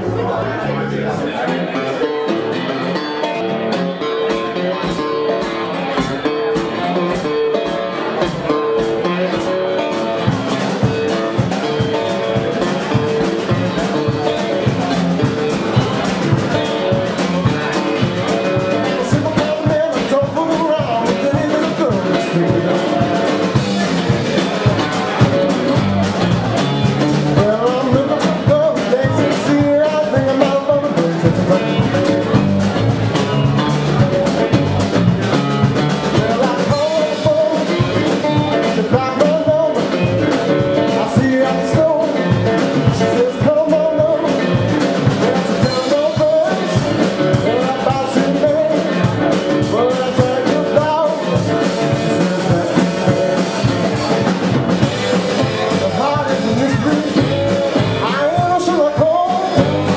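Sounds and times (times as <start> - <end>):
drum kit: 0.0 - 59.9
electric guitar: 0.0 - 59.9
man singing: 0.0 - 59.9
resonator guitar: 0.0 - 59.9.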